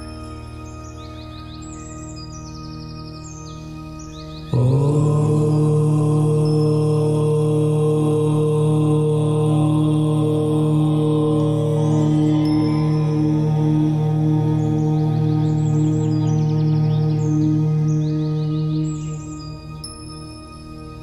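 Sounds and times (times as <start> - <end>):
chanted om drone: 0.0 - 21.0
soft background music: 0.0 - 21.0.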